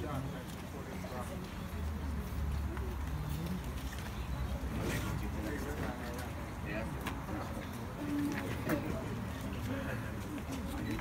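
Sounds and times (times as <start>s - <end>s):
people talking quietly: 0.0s - 11.0s.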